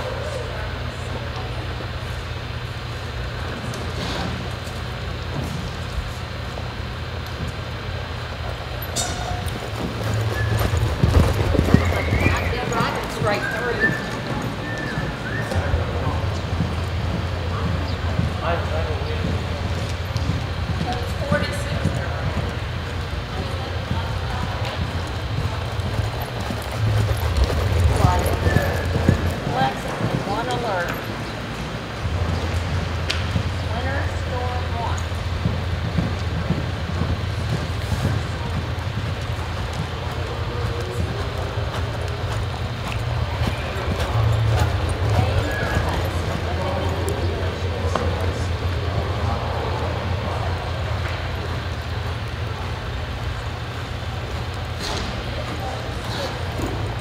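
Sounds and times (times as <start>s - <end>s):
horse hoofbeats on soft dirt: 0.0s - 31.4s, 32.0s - 57.0s.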